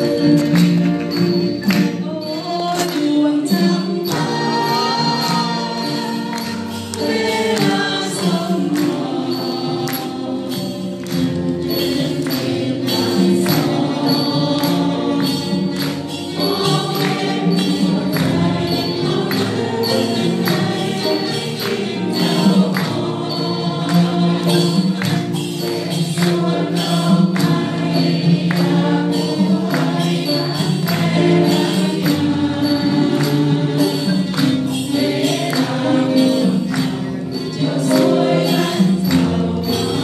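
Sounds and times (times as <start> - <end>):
sharp percussion strokes: 0.0 - 40.0
voices singing: 0.0 - 40.0.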